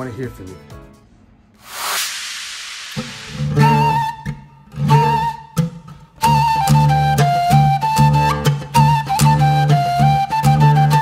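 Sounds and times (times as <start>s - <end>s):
brief rushing hiss: 1.6s - 4.2s
ney flute wavering note: 3.0s - 11.0s
plucked oud notes: 4.6s - 11.0s.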